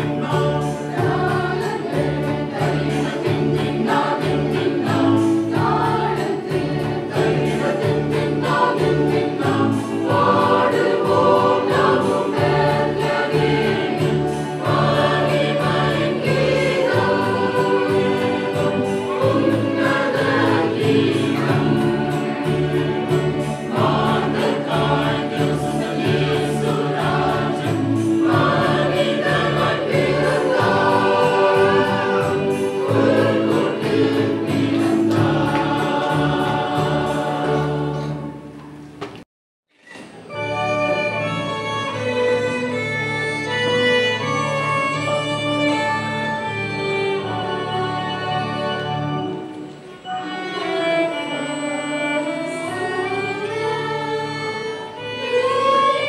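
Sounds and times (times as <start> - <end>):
choir singing a carol: 0.0 - 39.0, 40.3 - 56.0.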